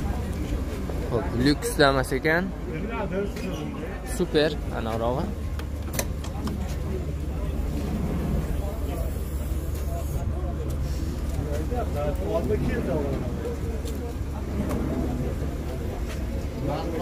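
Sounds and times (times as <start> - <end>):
people talking indistinctly: 0.0 - 17.0
steady low rumble: 4.2 - 17.0.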